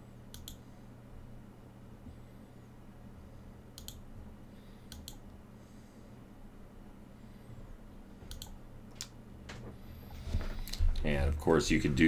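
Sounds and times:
low hum: 0:00.0 - 0:12.0
computer mouse clicking: 0:00.3 - 0:00.6, 0:03.7 - 0:04.0, 0:04.9 - 0:05.3, 0:08.3 - 0:09.2.

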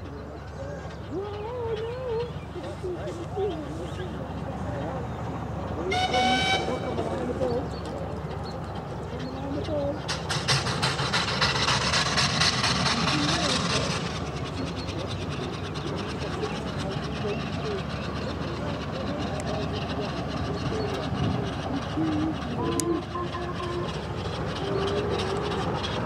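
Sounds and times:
distant steam locomotive: 0:00.0 - 0:26.0.

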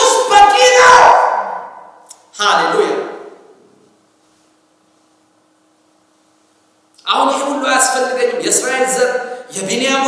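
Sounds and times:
man speaking loudly: 0:00.0 - 0:03.4, 0:07.0 - 0:10.0
faint steady hum: 0:00.0 - 0:10.0.

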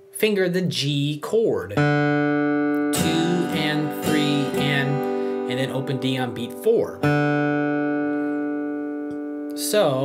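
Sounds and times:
acoustic guitar ringing: 0:01.8 - 0:10.0.

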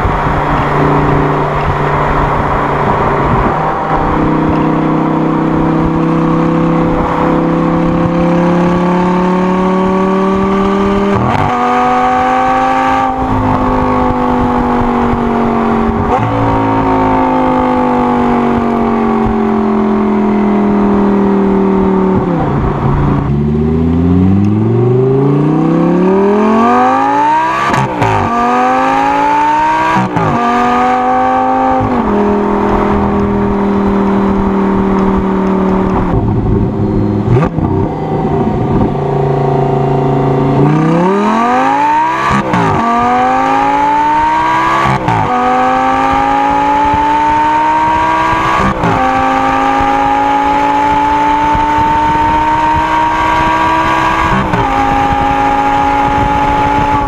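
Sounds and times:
car engine revving and shifting: 0:00.0 - 0:57.0.

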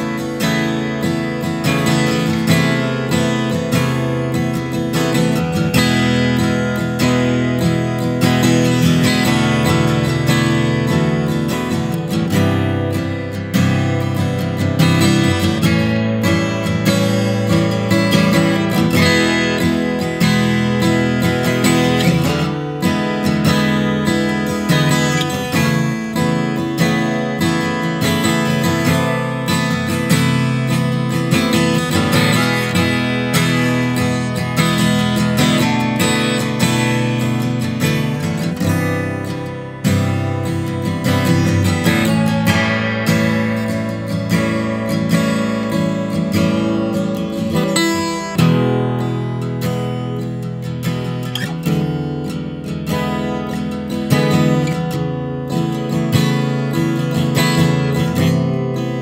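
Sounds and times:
acoustic guitar strumming and picking: 0:00.0 - 0:59.0.

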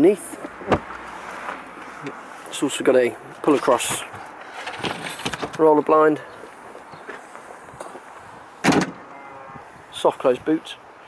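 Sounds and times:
tailgate shutting clunk: 0:08.6 - 0:09.1.

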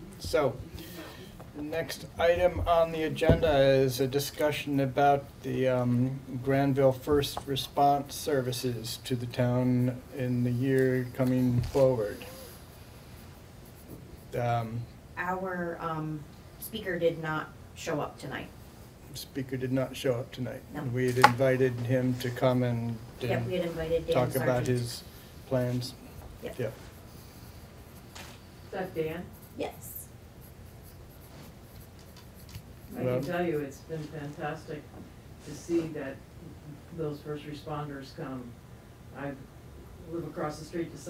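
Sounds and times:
person speaking: 0:00.0 - 0:12.6, 0:19.2 - 0:27.0, 0:31.8 - 0:36.0
low room hum: 0:00.0 - 0:41.0
pen scratching on paper: 0:30.4 - 0:33.7.

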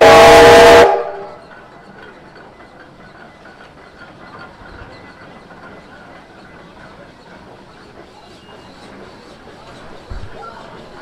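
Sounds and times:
steam hissing: 0:00.0 - 0:11.0.

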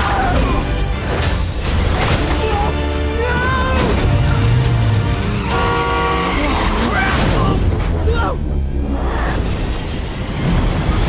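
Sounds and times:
dramatic music chord: 0:03.9 - 0:06.8.

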